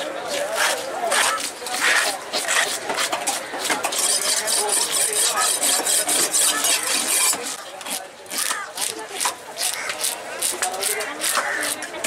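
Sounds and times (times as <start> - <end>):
knife scraping fish scales: 0.4 - 12.0.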